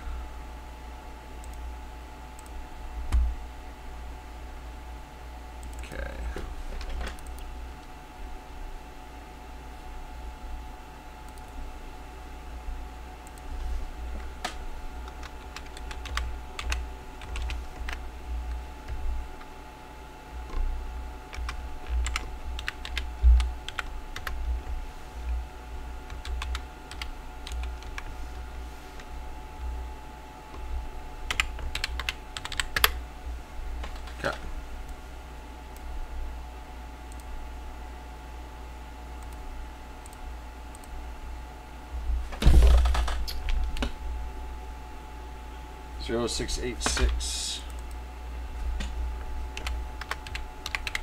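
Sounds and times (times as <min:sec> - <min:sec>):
faint hum: 0:00.0 - 0:51.0
typing on computer keyboard: 0:14.4 - 0:18.0, 0:21.3 - 0:24.4, 0:26.1 - 0:28.1, 0:31.3 - 0:33.0, 0:49.5 - 0:51.0.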